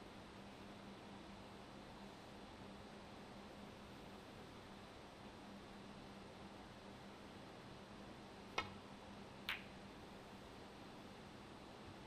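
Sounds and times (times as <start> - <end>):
snooker ball clicks: 8.6 - 8.8, 9.4 - 9.8.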